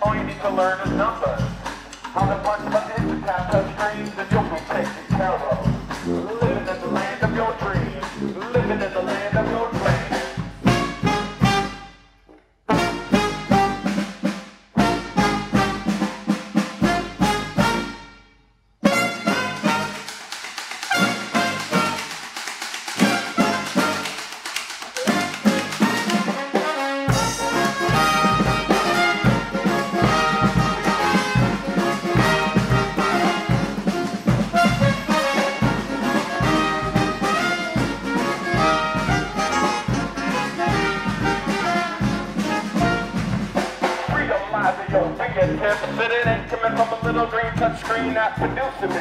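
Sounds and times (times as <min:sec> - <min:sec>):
heavy bass line: 0:00.0 - 0:11.4, 0:27.1 - 0:49.0
drums and cymbals: 0:00.0 - 0:12.0, 0:12.7 - 0:18.1, 0:18.8 - 0:49.0
funk brass band playing: 0:00.0 - 0:12.0, 0:12.7 - 0:18.2, 0:18.8 - 0:49.0.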